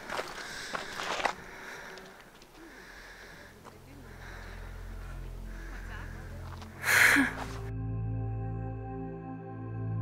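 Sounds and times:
footsteps on gravel trail: 0.0 - 7.7.

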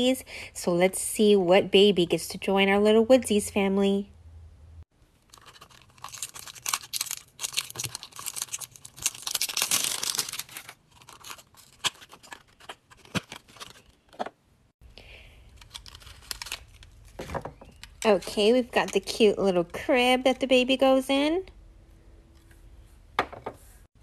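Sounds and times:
packaging crinkling and tearing: 5.2 - 14.2, 15.4 - 18.0.

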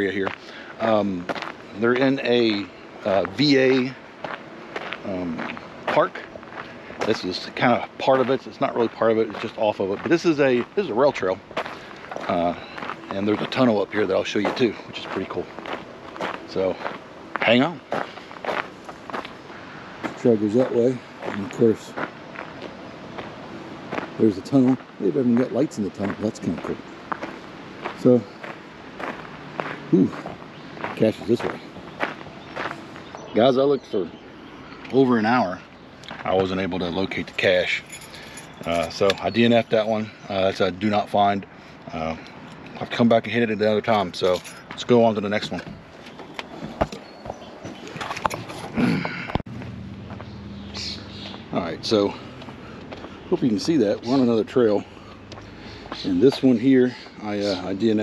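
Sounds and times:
footsteps on gravel: 0.0 - 33.5, 34.8 - 40.2, 43.9 - 58.0.

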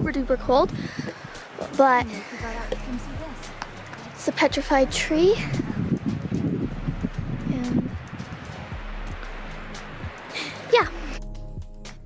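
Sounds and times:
wind buffeting microphone: 0.0 - 11.2
soft background music: 0.0 - 12.0.

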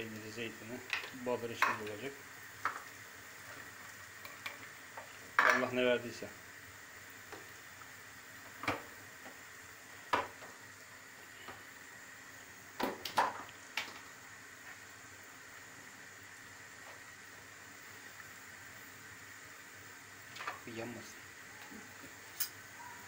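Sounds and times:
faint hiss from griddle: 0.0 - 23.0.

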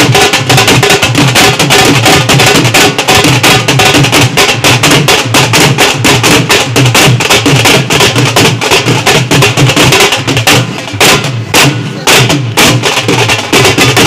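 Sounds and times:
festive music with drum beat: 0.0 - 14.0.

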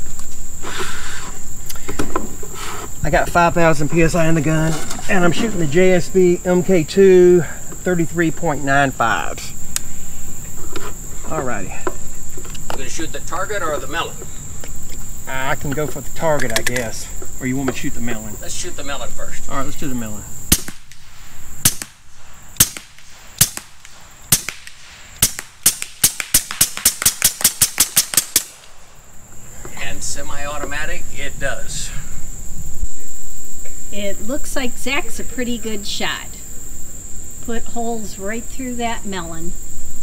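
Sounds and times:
insects droning: 0.0 - 40.0
air rifle shots: 20.5 - 28.8.

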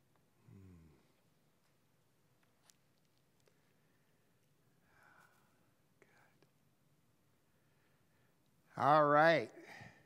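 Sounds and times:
faint whispering: 5.1 - 6.6.

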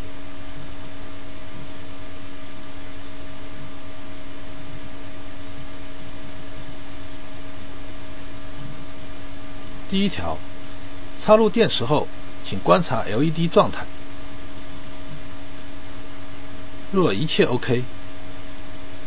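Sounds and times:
steady hum with low tones: 0.0 - 19.0.

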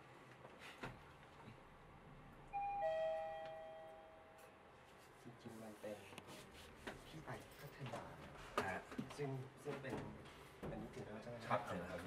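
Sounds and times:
two-tone elevator chime: 2.5 - 4.4.

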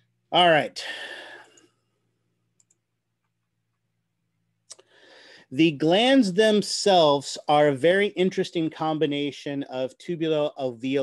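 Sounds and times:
breathy exhale: 0.8 - 1.7, 4.8 - 5.5
computer mouse clicks: 2.6 - 2.8.

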